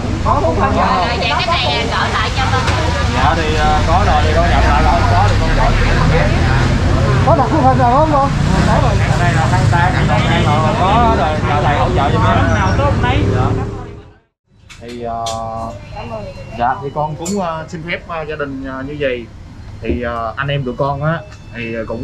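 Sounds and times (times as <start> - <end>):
people talking: 0.0 - 14.2, 14.8 - 22.0
low rumble of street traffic: 0.0 - 22.0.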